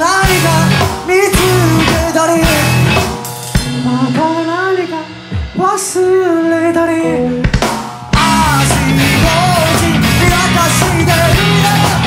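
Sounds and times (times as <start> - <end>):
drum kit hits: 0.0 - 6.2, 7.2 - 12.0
live rock band playing: 0.0 - 12.0.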